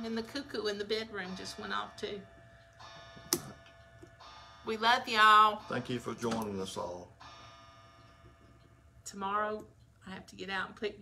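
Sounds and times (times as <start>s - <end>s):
chiming clock note: 1.0s - 8.6s.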